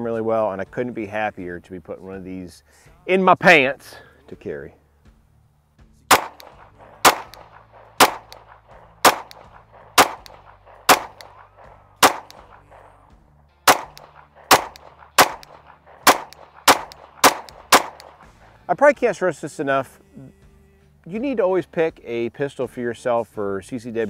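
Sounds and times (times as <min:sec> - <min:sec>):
pistol shots with echo: 0:06.1 - 0:13.0, 0:13.7 - 0:18.4.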